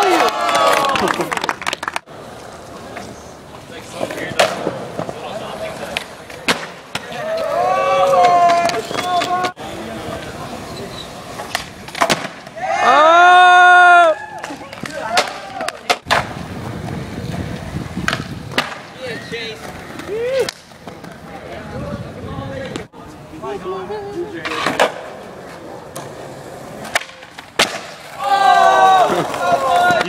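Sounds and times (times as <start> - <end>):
skateboard clacks: 0.0 - 12.7, 14.3 - 21.4, 24.4 - 30.0
skateboard wheels rolling on concrete: 0.0 - 30.0
skateboard cracks on concrete: 14.4 - 21.3, 24.4 - 30.0.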